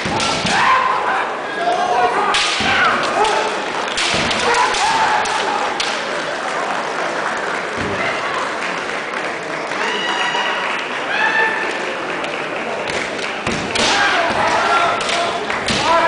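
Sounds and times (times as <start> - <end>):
people shouting: 0.0 - 6.0, 13.7 - 16.0
bamboo swords cracking: 2.3 - 6.0, 13.5 - 14.3.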